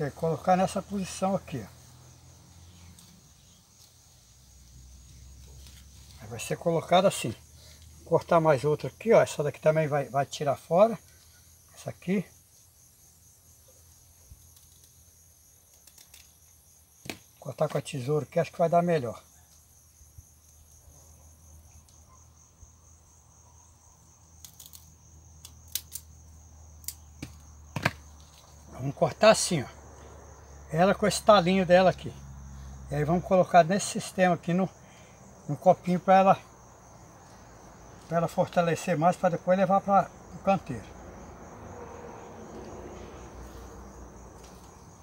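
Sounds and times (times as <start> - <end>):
crickets chirring: 0.0 - 45.0
scissors snipping shoots: 24.4 - 26.1.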